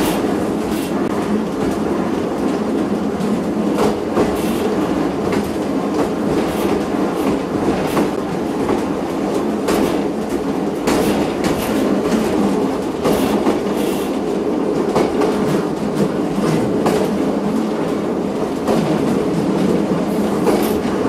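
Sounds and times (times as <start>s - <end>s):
train rumbling on track: 0.0s - 21.0s
wheels clicking over rail joints: 0.0s - 21.0s.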